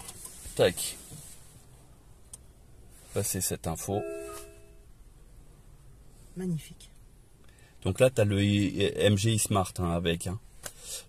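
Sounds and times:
faint low hum: 1.9 - 10.5.

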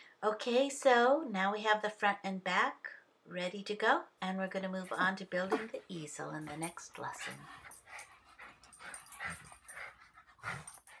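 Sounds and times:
small dog panting and snuffling: 4.9 - 11.0.

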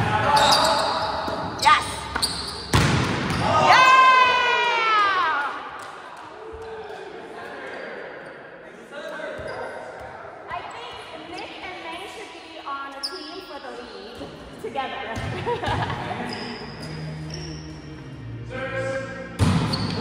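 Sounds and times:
voices echoing in a hall: 0.0 - 2.2, 3.3 - 20.0
volleyball being struck: 2.7 - 3.5.

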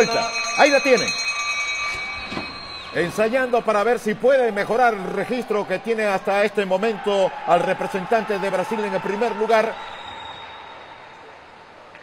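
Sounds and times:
indoor velodrome ambience: 1.2 - 12.0.

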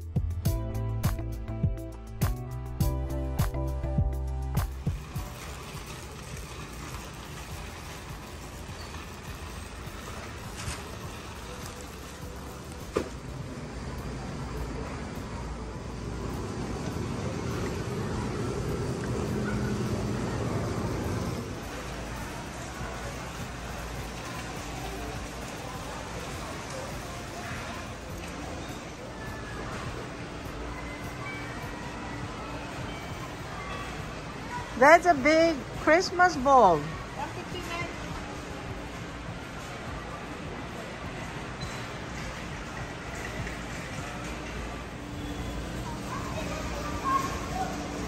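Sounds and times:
background music: 0.0 - 15.6
store ambience: 0.7 - 48.0
shopping cart wheels rolling: 4.7 - 30.3, 32.3 - 48.0.

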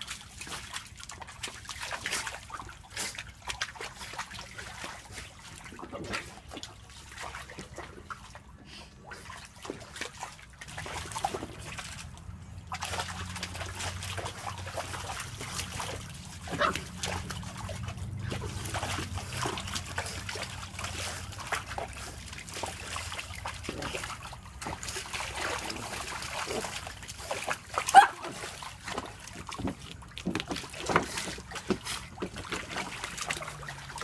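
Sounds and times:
water splashing and trickling: 0.0 - 34.0.

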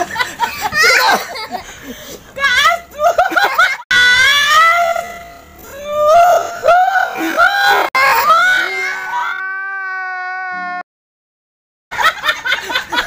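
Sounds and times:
people squealing and wailing: 3.9 - 10.8.

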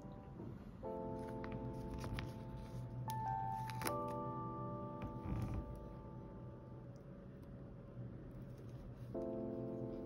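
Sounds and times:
held piano chord: 0.0 - 7.2, 9.0 - 10.0
plastic sticker being peeled: 1.8 - 4.2.

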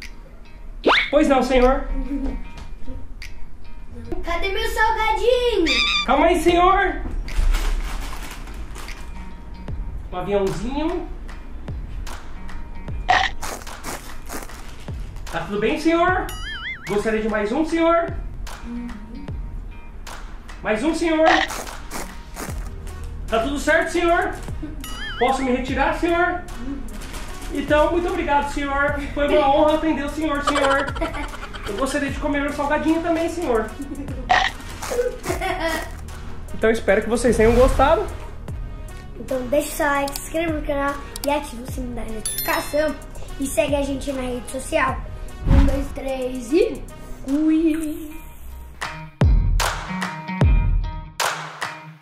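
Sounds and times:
background music: 0.0 - 52.0
child laughing: 1.9 - 3.2, 5.6 - 6.1, 24.6 - 25.5, 29.3 - 32.3, 33.7 - 36.0
chip crunching while chewed: 13.4 - 14.7.

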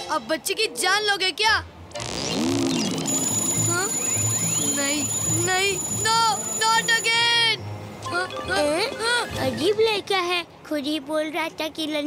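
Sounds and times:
high steady electronic tone: 2.3 - 8.2.

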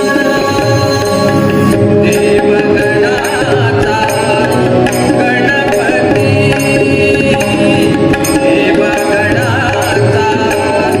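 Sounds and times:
harmonium tones: 0.0 - 10.6.

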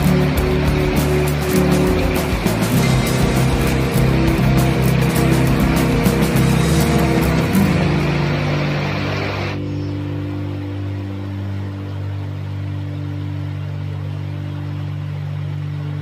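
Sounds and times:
river rapids rushing over stones: 0.0 - 9.6
steady low hum: 0.0 - 16.0.

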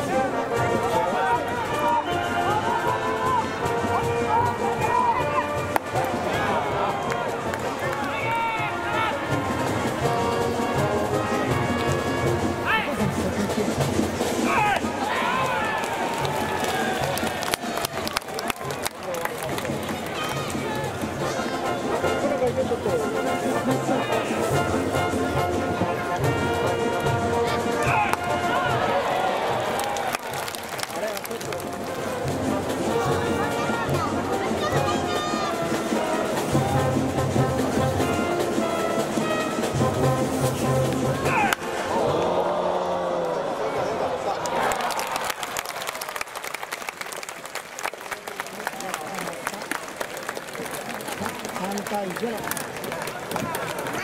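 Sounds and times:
trumpets and brass playing: 7.9 - 12.8, 21.2 - 29.5, 31.9 - 41.6
crowd chanting and singing: 40.0 - 44.4.

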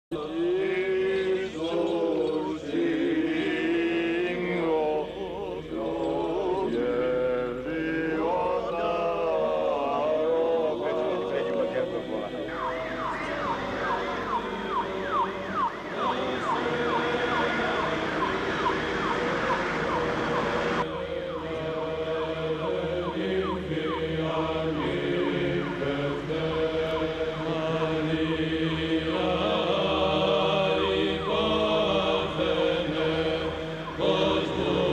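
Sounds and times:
voices singing chant: 0.1 - 34.9
siren sweeping up and down: 10.9 - 34.9.

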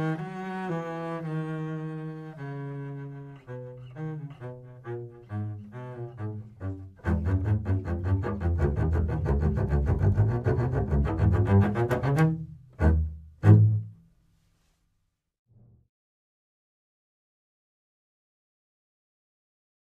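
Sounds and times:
bowed double bass: 0.0 - 14.2.

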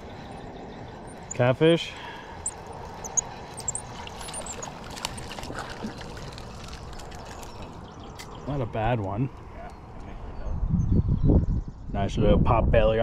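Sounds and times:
water splashing and trickling: 0.0 - 8.3.

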